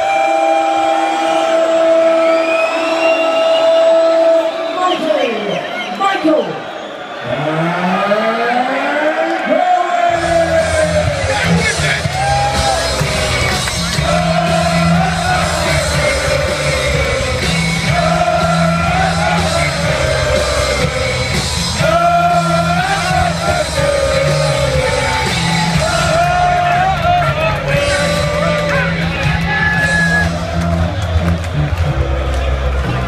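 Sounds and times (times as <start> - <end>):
rock music with singing: 9.4 - 33.0.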